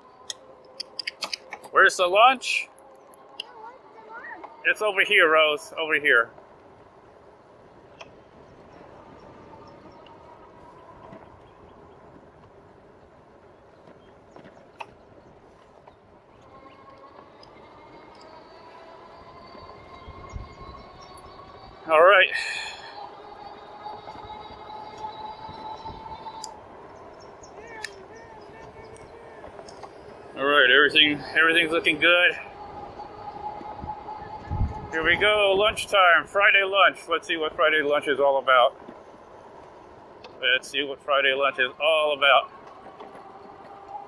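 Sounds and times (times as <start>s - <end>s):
tyre and wind noise: 6.3s - 18.2s, 23.6s - 36.4s
person speaking: 40.4s - 42.5s.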